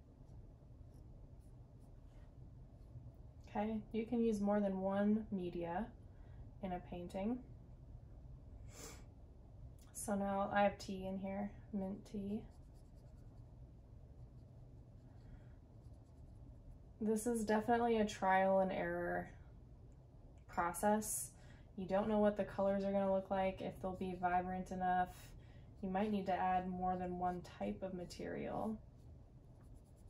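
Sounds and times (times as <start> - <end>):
low room hum: 0.0 - 30.0
cotton swab brushing paper: 12.5 - 13.5, 15.7 - 16.8, 26.0 - 30.0.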